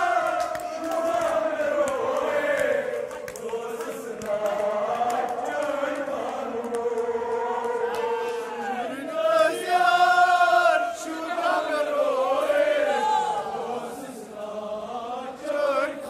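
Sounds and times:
men chanting a lament: 0.0s - 16.0s.

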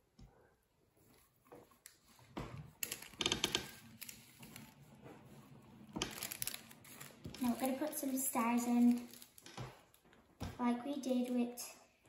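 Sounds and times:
plastic decorations rattling: 2.8s - 4.7s, 6.0s - 10.0s.

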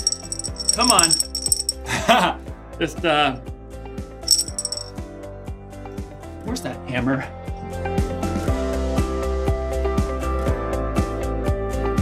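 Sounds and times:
glass bottle clink: 0.0s - 1.8s, 4.3s - 4.9s.

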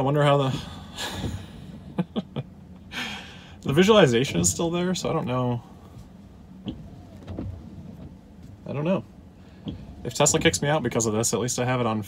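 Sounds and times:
man exhaling breathily: 0.5s - 1.9s, 2.9s - 3.6s
man chuckling: 0.6s - 3.2s.

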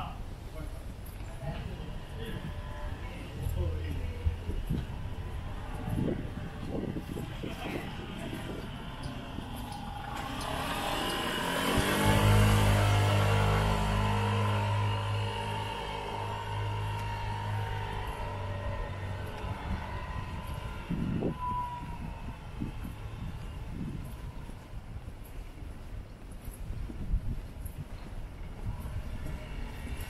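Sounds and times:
vehicle engine passing by: 1.1s - 24.7s, 28.6s - 30.0s.

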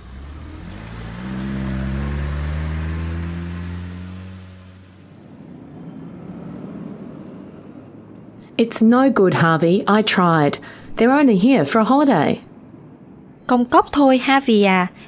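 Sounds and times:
car engine accelerating: 0.0s - 8.6s.

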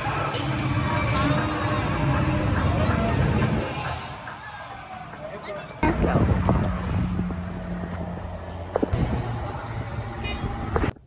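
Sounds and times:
car engine humming: 0.0s - 11.0s
traffic noise: 0.0s - 11.0s.

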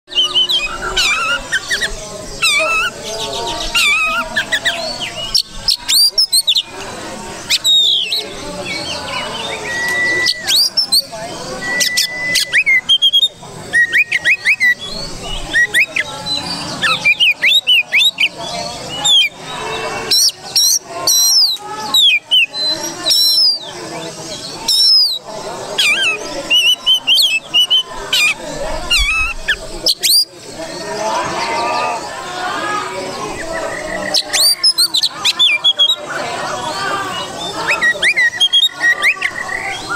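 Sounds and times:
long level bird whistles: 0.1s - 6.7s, 7.5s - 25.2s, 25.8s - 30.8s, 37.1s - 39.9s
bird singing whistled song: 0.1s - 6.8s, 7.4s - 30.9s, 33.3s - 36.2s, 37.0s - 39.9s.

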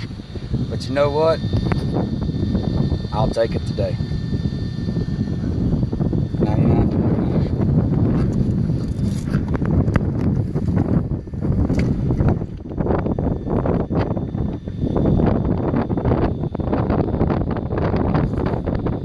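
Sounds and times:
wind buffeting microphone: 0.0s - 19.0s
microphone handling clicks: 1.4s - 2.1s, 7.3s - 12.8s.

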